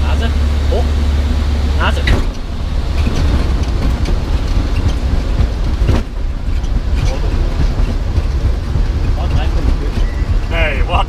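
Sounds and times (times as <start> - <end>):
aircraft engine and propeller rumble: 0.0 - 11.0.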